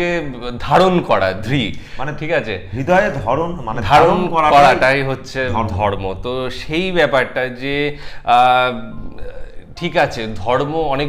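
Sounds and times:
faint background music: 0:00.0 - 0:11.0
man talking: 0:00.0 - 0:11.0.

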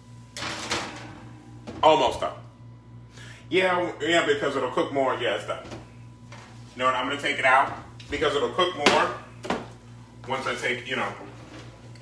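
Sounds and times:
things scraping in a drawer: 0:11.2 - 0:11.9.

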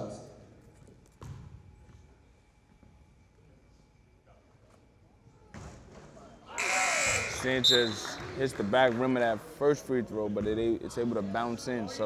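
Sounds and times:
basketball bouncing on wooden floor: 0:01.2 - 0:01.6.

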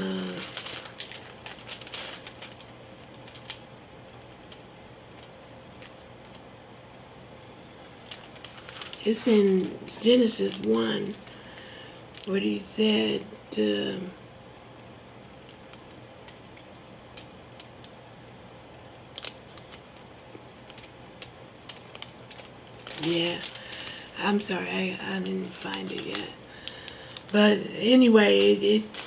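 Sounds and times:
bible pages turning: 0:00.0 - 0:03.6, 0:07.9 - 0:12.3, 0:19.1 - 0:24.5, 0:25.1 - 0:27.4
faint room hum: 0:00.0 - 0:29.0.

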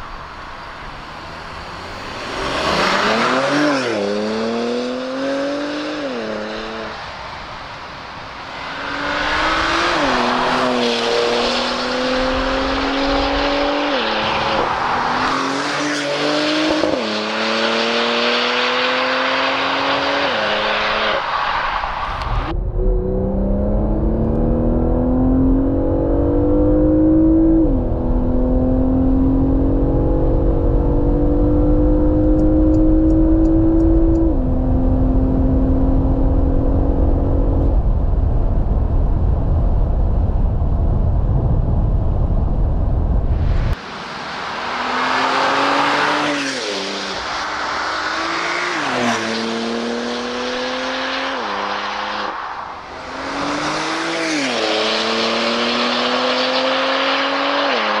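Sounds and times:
car engine accelerating hard: 0:00.8 - 0:06.9, 0:08.8 - 0:21.2, 0:22.2 - 0:37.7, 0:43.7 - 0:58.0.

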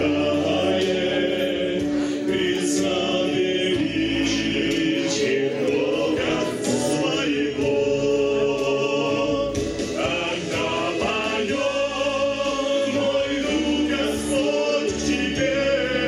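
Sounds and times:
vocal ensemble singing in harmony: 0:00.0 - 0:16.0.

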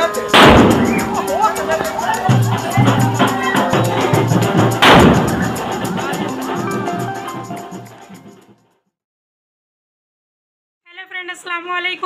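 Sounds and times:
background music with steady beat: 0:00.0 - 0:08.6
loud firecracker bang: 0:00.3 - 0:01.8, 0:04.5 - 0:05.8.

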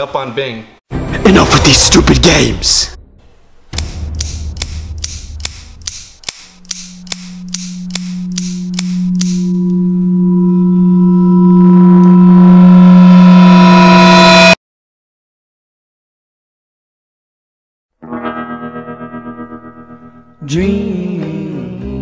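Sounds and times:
clock-like ticking: 0:03.8 - 0:09.4
low steady drone: 0:06.5 - 0:14.6.

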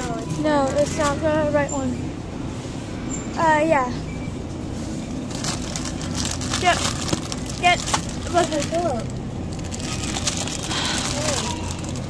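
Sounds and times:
low background hum: 0:00.0 - 0:12.0
plastic bag crinkling: 0:05.3 - 0:12.0.

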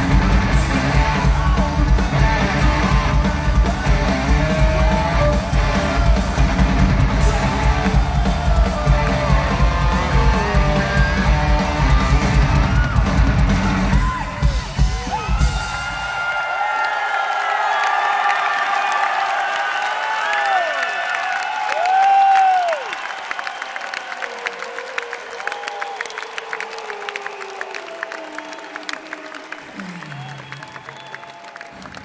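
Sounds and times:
audience clapping: 0:00.0 - 0:32.0
crowd cheering and whooping: 0:00.0 - 0:32.0.

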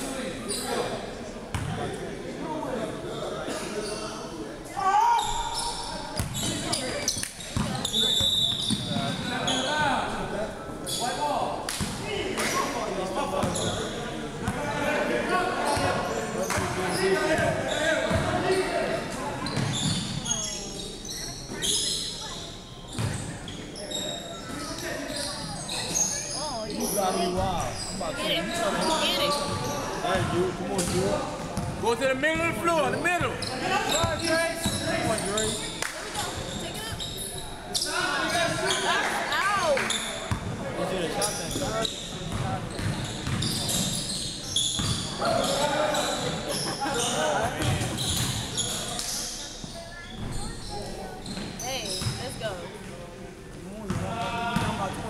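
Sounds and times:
sneakers squeaking: 0:00.4 - 0:01.9, 0:03.1 - 0:04.3, 0:05.0 - 0:11.2, 0:11.8 - 0:14.6, 0:15.6 - 0:53.0, 0:53.9 - 0:55.0.

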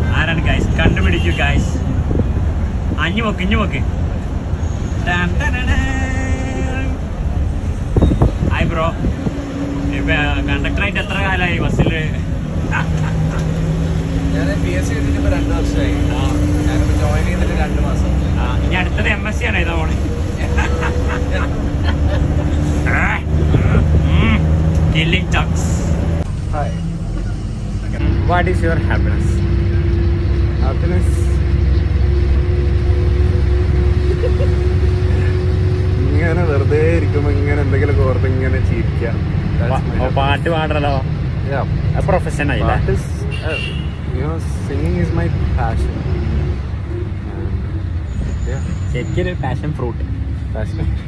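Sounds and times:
bus engine rumble: 0:00.0 - 0:51.0
road noise: 0:00.0 - 0:51.0
voices talking: 0:00.0 - 0:51.0.

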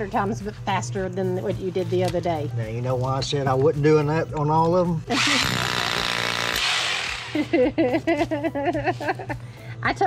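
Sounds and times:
hammer drill boring into concrete: 0:05.1 - 0:07.4.

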